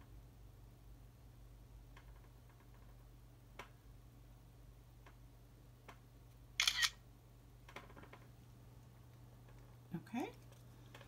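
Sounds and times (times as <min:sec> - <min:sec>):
low steady hum: 0:00.0 - 0:11.0
smartphone camera shutter click: 0:06.6 - 0:07.0.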